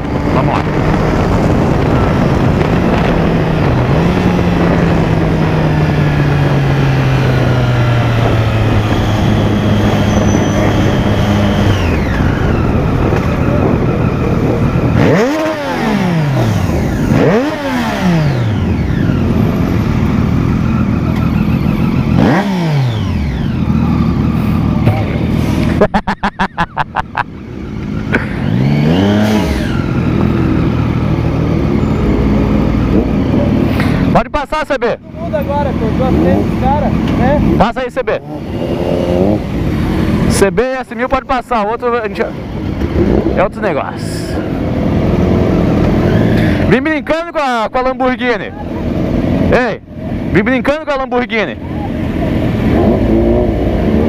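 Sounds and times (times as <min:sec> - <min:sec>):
wind rush: 0:00.0 - 0:17.2.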